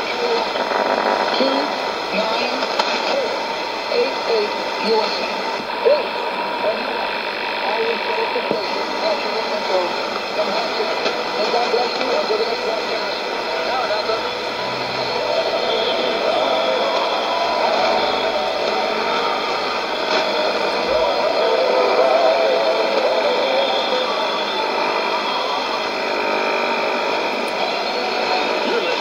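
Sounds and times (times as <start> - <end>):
indistinct radio voice: 0.0 - 29.0
static hiss: 0.0 - 29.0
faint radio whistles: 8.1 - 29.0.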